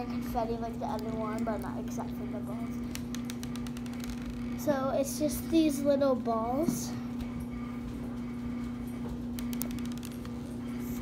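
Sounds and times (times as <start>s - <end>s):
steady low hum: 0.0s - 11.0s
faint clicks: 9.4s - 10.4s.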